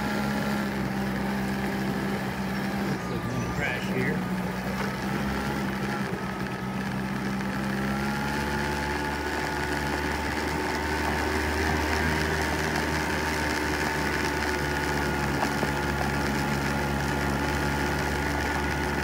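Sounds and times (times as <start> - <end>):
scooter engine running: 0.0 - 19.0
tyres on gravel road: 0.0 - 19.0.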